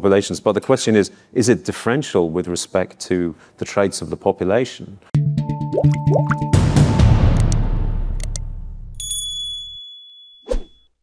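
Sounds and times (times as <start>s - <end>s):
plucked clicking notes: 5.6s - 6.6s, 7.3s - 7.6s, 8.2s - 8.4s
loud swelling music hit: 6.4s - 8.9s
bright bell-like ding: 9.0s - 10.8s.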